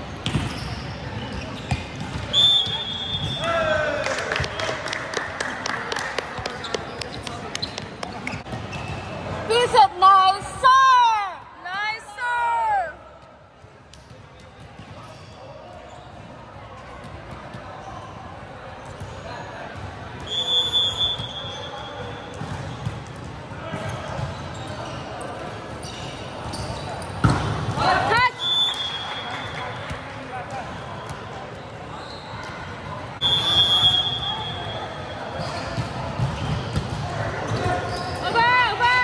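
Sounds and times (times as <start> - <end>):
players' voices: 0.1 - 39.0
referee's whistle: 2.3 - 3.7, 20.2 - 22.8, 28.1 - 30.0, 33.2 - 35.8
volleyball hits: 27.2 - 28.2.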